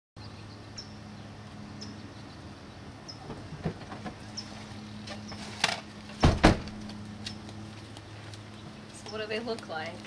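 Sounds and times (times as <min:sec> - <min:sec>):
bird chirp: 0:00.2 - 0:03.5, 0:04.2 - 0:05.5
car door opening: 0:06.2 - 0:06.8.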